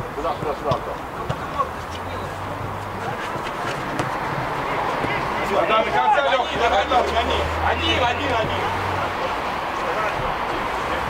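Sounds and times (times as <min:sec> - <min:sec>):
football being kicked: 0:00.6 - 0:01.7, 0:03.9 - 0:04.2.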